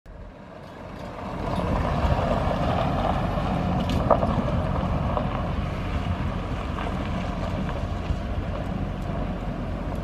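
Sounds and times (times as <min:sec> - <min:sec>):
truck engine running: 0:00.1 - 0:10.0
wind buffeting microphone: 0:00.8 - 0:10.0.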